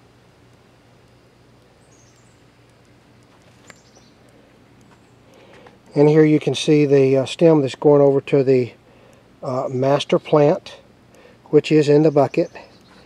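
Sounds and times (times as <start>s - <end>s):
faint outdoor ambience: 0.0s - 13.0s
high bird chirps: 3.7s - 4.2s.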